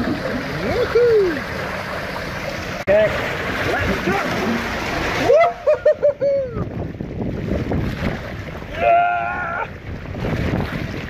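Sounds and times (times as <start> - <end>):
water rushing down a slide: 0.0 - 11.0.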